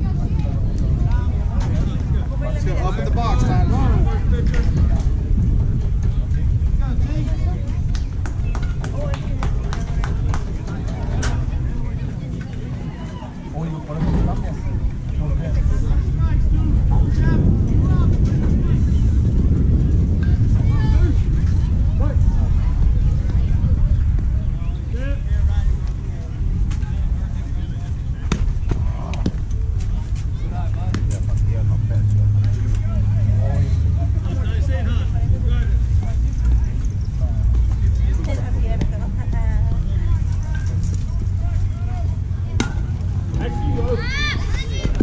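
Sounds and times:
faint voices calling out: 0:00.0 - 0:45.0
wind rumbling on microphone: 0:00.0 - 0:45.0.

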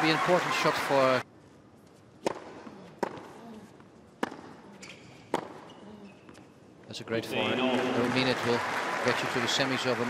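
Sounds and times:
tennis racket hitting ball: 0:02.2 - 0:03.4, 0:04.2 - 0:04.6, 0:05.3 - 0:05.7.

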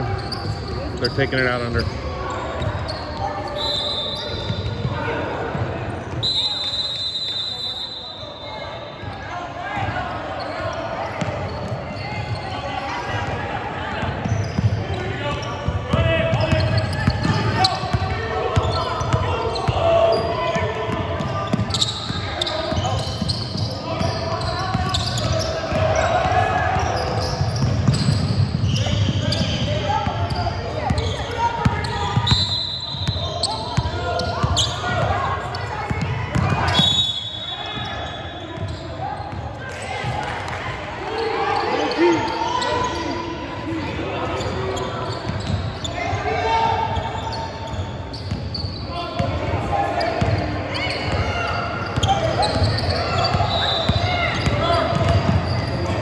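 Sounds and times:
voices of players and spectators: 0:00.0 - 0:56.0
ball bouncing on hardwood court: 0:53.3 - 0:55.9.

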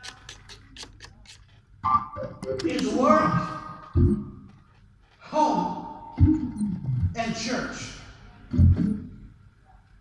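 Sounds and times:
organ playing softly: 0:01.8 - 0:02.9.

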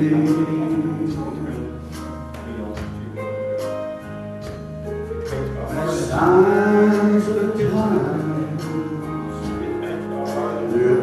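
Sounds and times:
live church band music: 0:00.0 - 0:11.0.

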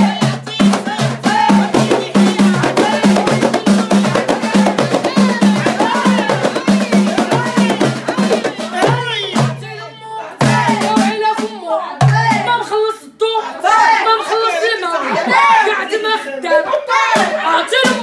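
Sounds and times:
hand-struck frame drums: 0:00.0 - 0:09.8, 0:10.4 - 0:12.5
women singing together: 0:00.0 - 0:18.0.

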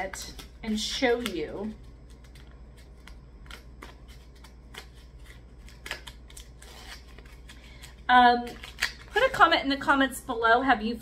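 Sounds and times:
packaging clicks and crinkles: 0:02.0 - 0:09.3.

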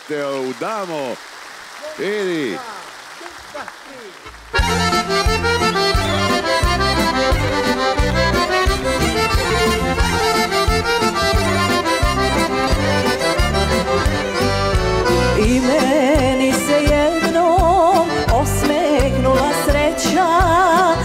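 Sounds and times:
accordion: 0:04.4 - 0:21.0
bass and drum beat: 0:04.6 - 0:21.0
woman singing with vibrato: 0:15.4 - 0:21.0.

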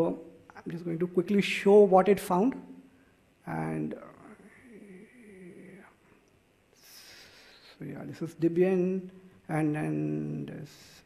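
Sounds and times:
faint high-pitched whine: 0:00.0 - 0:11.0
man humming low: 0:04.0 - 0:06.0.

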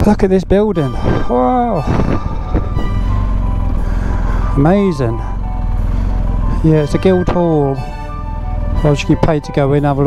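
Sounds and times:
background music: 0:00.0 - 0:10.0
motorcycle engine rumbling: 0:00.0 - 0:10.0.

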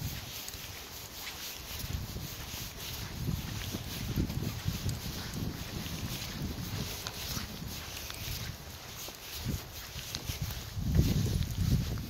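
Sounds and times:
steady hiss: 0:00.0 - 0:11.8
footsteps on dirt trail: 0:00.0 - 0:12.0.

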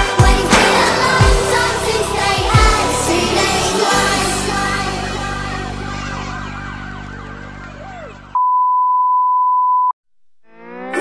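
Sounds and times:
background music: 0:00.0 - 0:08.3.

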